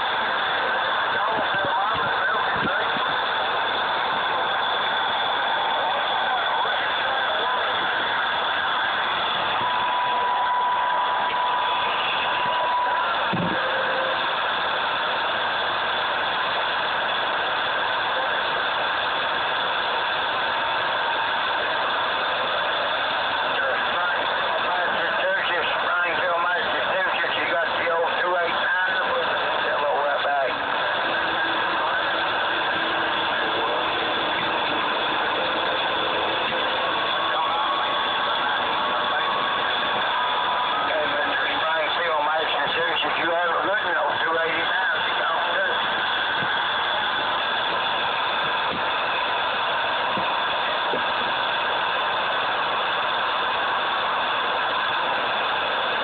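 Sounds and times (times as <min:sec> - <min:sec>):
radio static: 0:00.0 - 0:51.6
faint garbled radio voices: 0:00.0 - 0:56.0.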